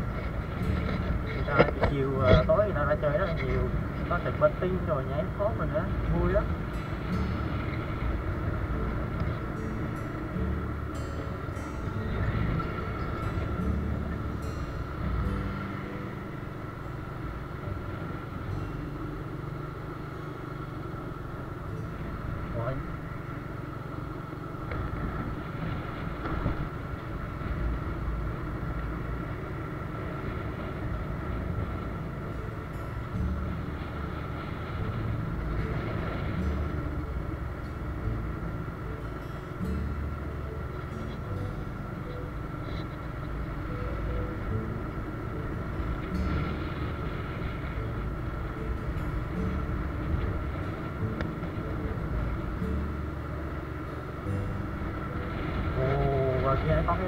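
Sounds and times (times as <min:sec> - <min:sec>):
faint steady whine: 0:00.0 - 0:57.0
motorbike engine and road hum: 0:00.0 - 0:57.0
wind buffeting microphone: 0:00.0 - 0:57.0.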